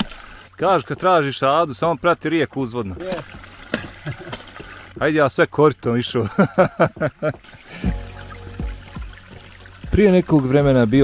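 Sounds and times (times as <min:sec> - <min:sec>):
trickle of stream water: 0:00.0 - 0:05.1, 0:07.3 - 0:11.0.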